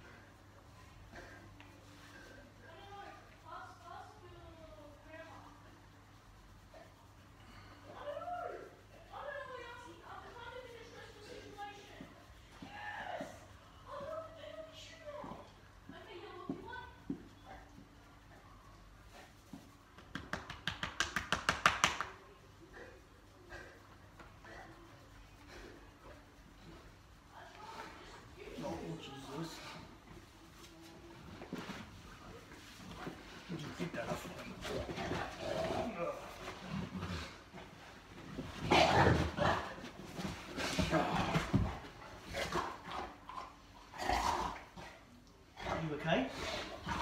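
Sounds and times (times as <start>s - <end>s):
hands patting dog: 19.5s - 22.2s.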